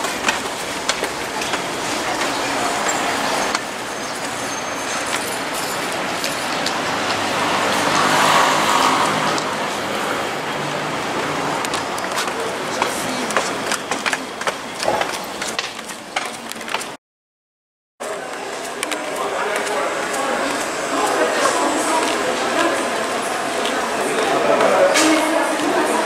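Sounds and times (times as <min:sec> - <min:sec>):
road traffic noise: 0:00.0 - 0:17.0, 0:18.0 - 0:26.0
vehicle passing: 0:05.4 - 0:13.8.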